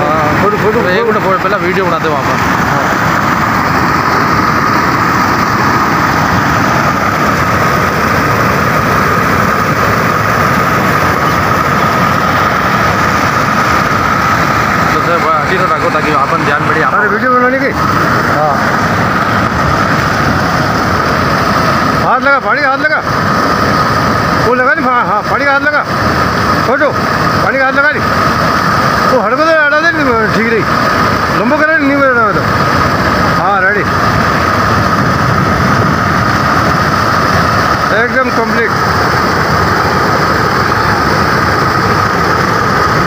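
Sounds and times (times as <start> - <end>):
water rushing over a weir: 0.0 - 43.0.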